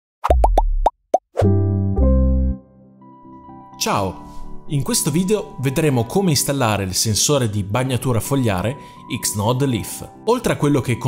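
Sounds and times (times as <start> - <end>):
deep bass note: 1.4 - 2.7
deep held chord: 1.5 - 3.8.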